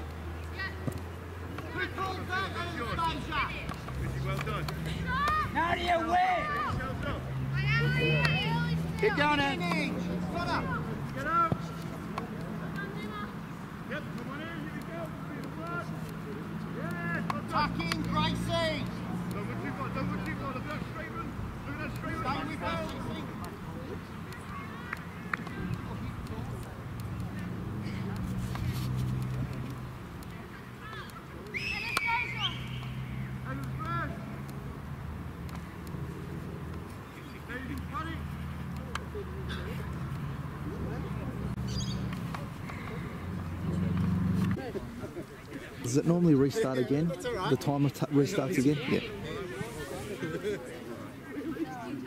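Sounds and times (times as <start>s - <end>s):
distant players shouting: 0.5s - 52.0s.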